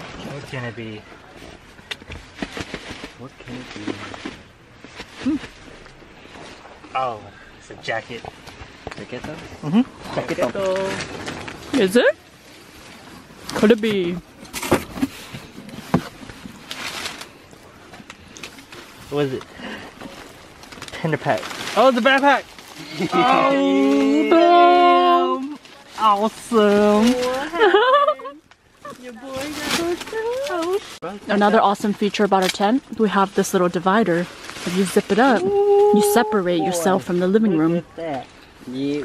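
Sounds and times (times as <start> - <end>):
packing paper rustling: 15.0 - 37.6
cardboard box rustling: 28.8 - 31.6.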